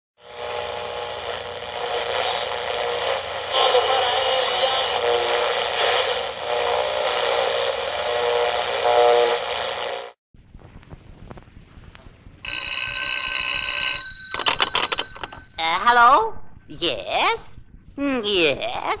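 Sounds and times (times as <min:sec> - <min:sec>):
radio hiss: 0:00.3 - 0:10.2
steady radio tones: 0:00.3 - 0:10.2.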